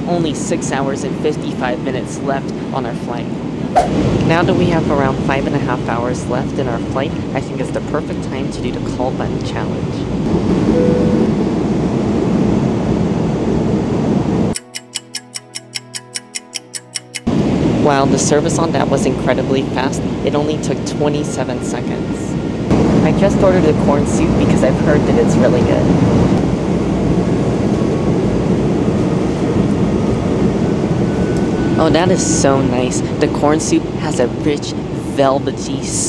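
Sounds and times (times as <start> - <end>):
airplane cabin roar: 0.0 - 14.6, 17.3 - 36.0
short beep: 10.7 - 11.3
clock-like ticking: 14.6 - 17.3
music: 14.6 - 17.3.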